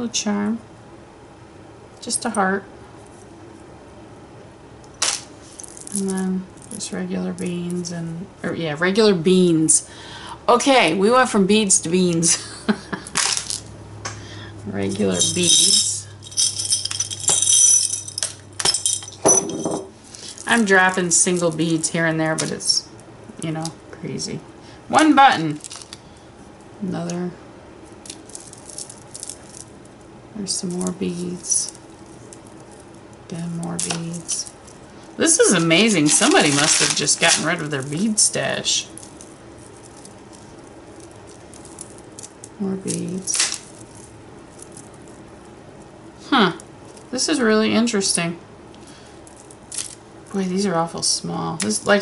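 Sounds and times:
beads clinking and rattling: 5.0 - 7.9, 13.2 - 13.7, 14.8 - 22.8, 25.3 - 26.0, 27.8 - 45.9, 49.2 - 50.4.

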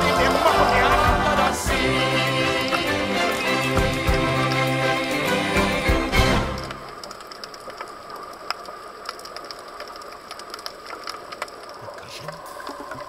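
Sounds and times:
sharp reef clicks: 6.5 - 13.0.

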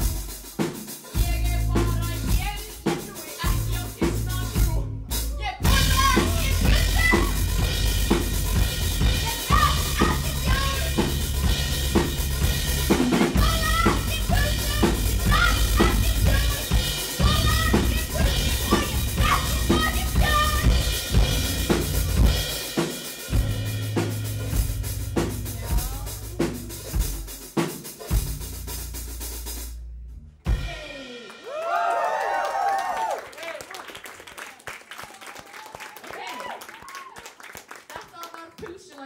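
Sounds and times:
drum kit: 0.0 - 33.2
bass guitar: 1.1 - 31.0.

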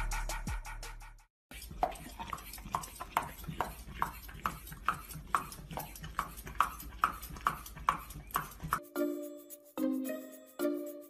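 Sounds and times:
dog crunching a carrot: 1.5 - 8.8
chiming music: 8.8 - 11.0.

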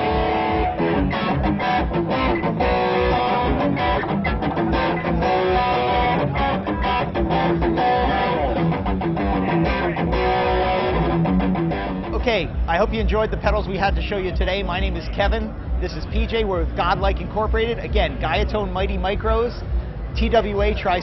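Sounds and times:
overdriven electric guitar: 0.0 - 12.2.

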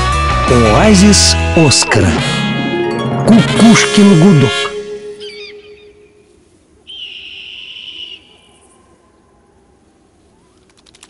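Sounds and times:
high steady whistle-like tone: 6.9 - 8.6.

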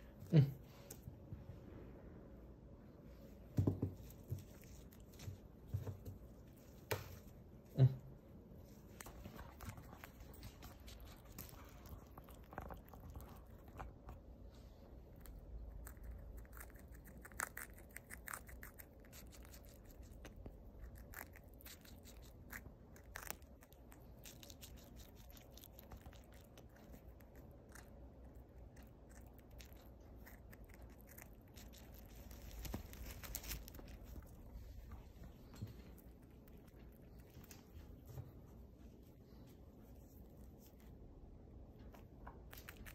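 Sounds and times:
animal gnawing and chewing: 3.9 - 41.0, 41.7 - 42.9.

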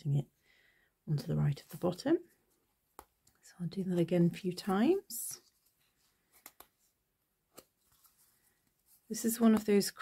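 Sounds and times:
faint thread clicks: 6.3 - 6.8.

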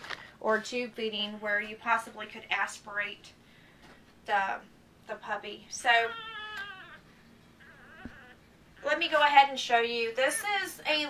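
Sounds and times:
puppy crying: 5.8 - 8.9.

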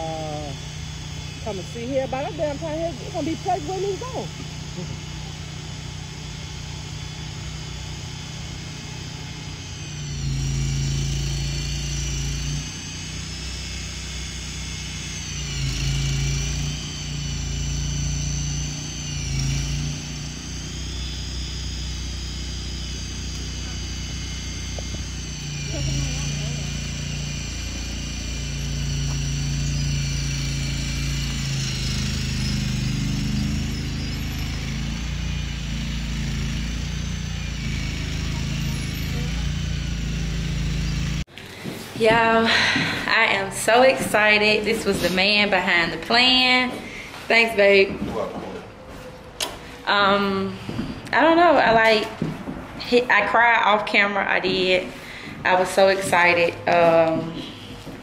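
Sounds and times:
small engine revving with whine: 0.0 - 58.0.

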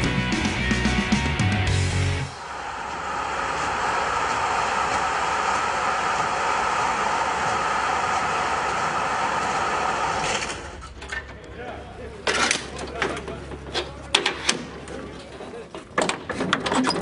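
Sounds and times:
tarpaulin roof rolling along rails: 2.3 - 17.0.

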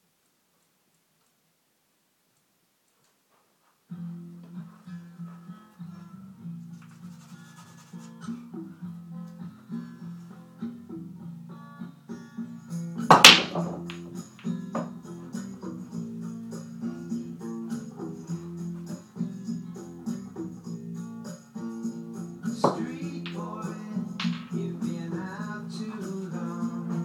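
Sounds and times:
acoustic guitar music: 3.9 - 27.0
cue ball breaking rack: 13.1 - 14.2, 22.6 - 24.8
pool balls clicking: 13.1 - 15.0, 22.5 - 25.5.

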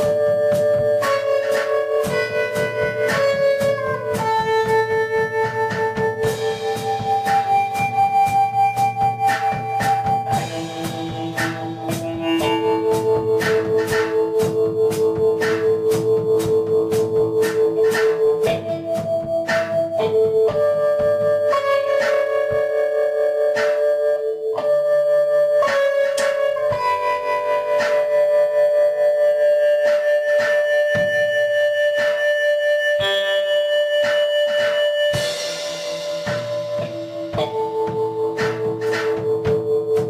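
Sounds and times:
live instrumental band music: 0.0 - 40.0.

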